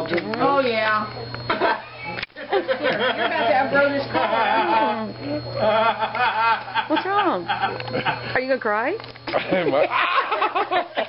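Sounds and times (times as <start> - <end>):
people laughing: 1.5 - 8.4, 9.3 - 11.0.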